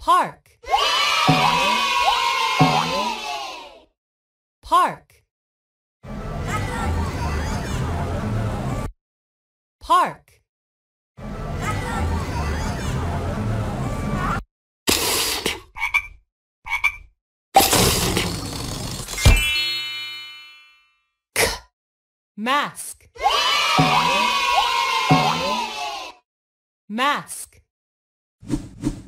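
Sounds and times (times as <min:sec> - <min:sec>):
children cheering and whooping: 0:00.6 - 0:03.8, 0:23.2 - 0:26.2
bright music: 0:01.3 - 0:02.0.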